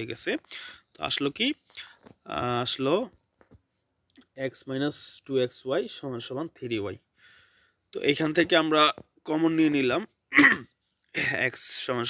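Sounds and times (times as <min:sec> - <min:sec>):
man speaking: 0:00.0 - 0:03.2, 0:04.2 - 0:07.0, 0:07.9 - 0:12.0.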